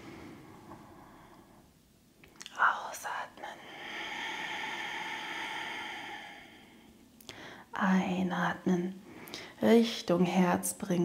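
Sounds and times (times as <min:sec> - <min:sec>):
woman inhaling softly: 0:03.5 - 0:07.7
long breathy exhale: 0:03.6 - 0:07.7
short sharp breath noises: 0:03.6 - 0:07.7.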